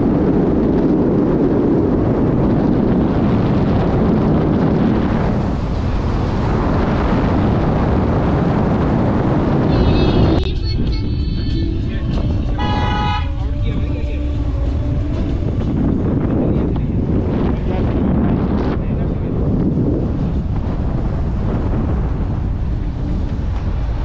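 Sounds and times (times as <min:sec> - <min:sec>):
car road and wind rumble: 0:00.0 - 0:24.0
car horn toot: 0:12.4 - 0:13.8.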